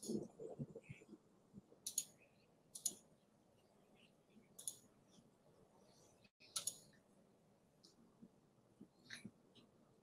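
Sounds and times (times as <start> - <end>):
computer mouse clicks: 1.8 - 3.1, 4.6 - 4.9, 6.4 - 7.0.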